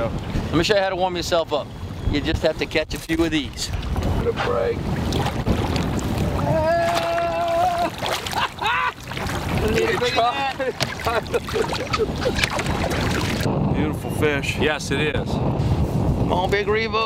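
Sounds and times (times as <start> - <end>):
wind on microphone: 0.0 - 17.0
men shouting and whooping: 6.2 - 12.4.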